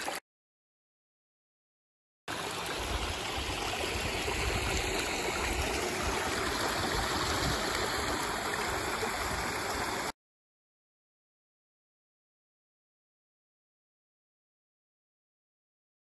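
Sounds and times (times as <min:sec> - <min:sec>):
brook flowing over stones: 0:00.0 - 0:00.2, 0:02.3 - 0:10.1.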